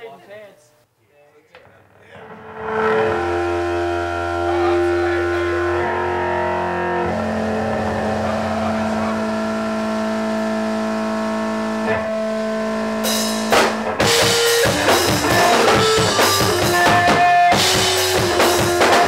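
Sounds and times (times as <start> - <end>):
distorted electric guitar chords: 1.5 - 19.0.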